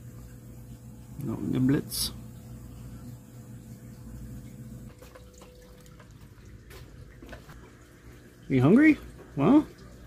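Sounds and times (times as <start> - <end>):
low steady hum: 0.0 - 10.0
water trickling and dripping: 0.0 - 10.0.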